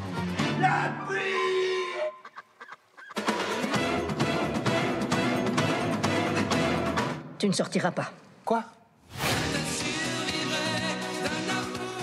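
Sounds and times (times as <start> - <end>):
loud music: 9.2 - 12.0.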